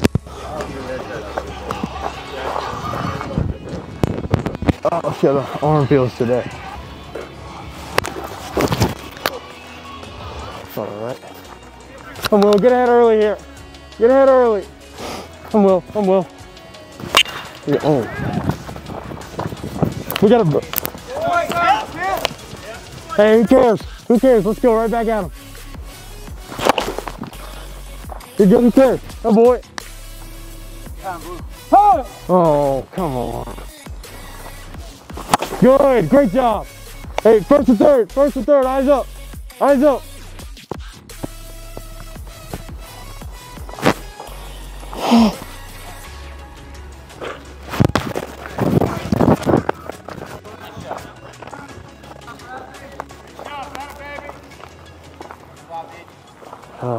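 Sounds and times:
faint voices: 0.0 - 24.2, 44.1 - 56.9
background music with bass: 0.0 - 56.9.

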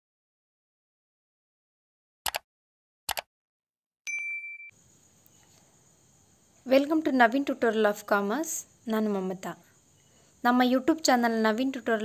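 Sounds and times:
notification bell ding: 4.1 - 4.7
faint hiss: 4.8 - 12.0.

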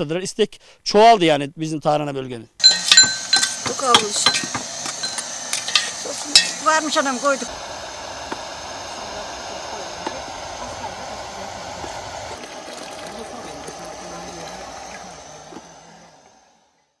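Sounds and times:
light clinks: 2.6 - 6.6
water pouring into a pot: 11.9 - 15.7.

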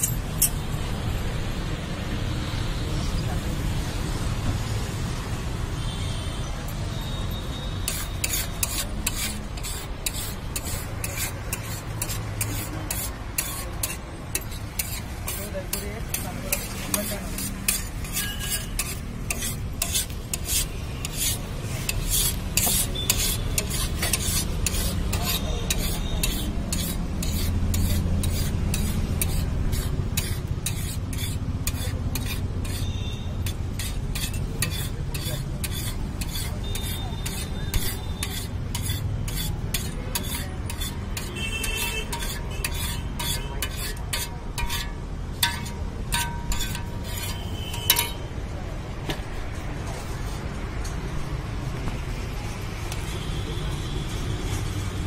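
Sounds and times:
metal spatula scraping griddle: 7.8 - 48.3.

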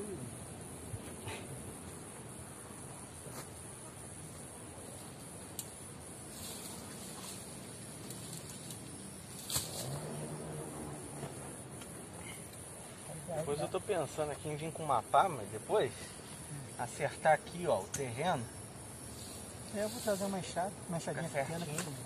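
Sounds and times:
high-pitched insect drone: 0.0 - 22.0
brush and wood rustling: 6.3 - 10.0
sharp wood snap: 9.4 - 9.9.

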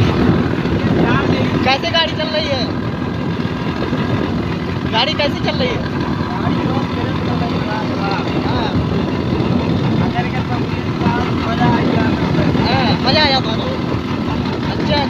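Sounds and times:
motorcycle engine running: 0.0 - 15.0
road noise: 0.0 - 15.0.

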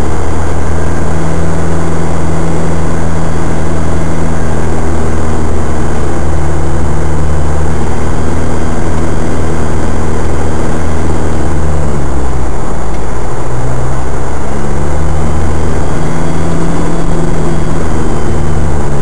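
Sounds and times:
engine droning at low revs: 0.0 - 19.0.

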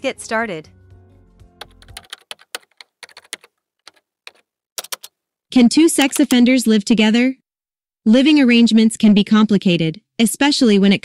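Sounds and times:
keyboard typing: 1.6 - 5.2, 5.9 - 6.5.

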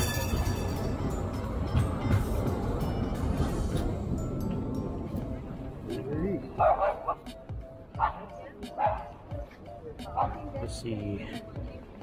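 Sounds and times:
music playing: 0.0 - 12.0
tram wheels rumbling: 0.0 - 12.0.

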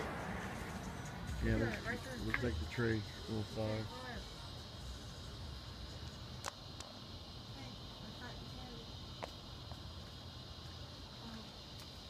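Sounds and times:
insects chorus: 0.0 - 12.0
sharp insect chirp: 0.0 - 12.0.

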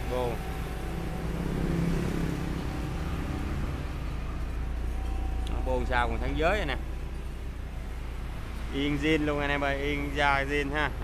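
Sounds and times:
forklift engine idling: 0.0 - 11.0.

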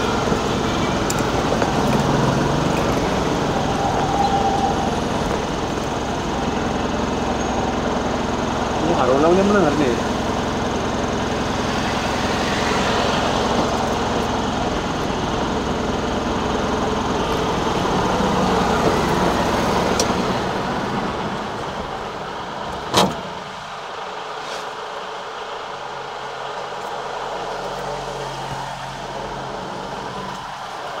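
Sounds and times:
car engine idling: 0.0 - 31.0
street noise: 0.0 - 31.0.

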